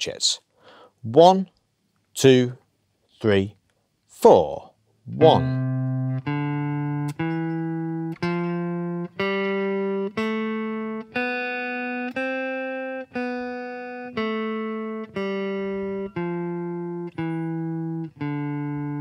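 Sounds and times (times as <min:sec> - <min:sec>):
electric guitar plucking scale: 0:05.1 - 0:19.0.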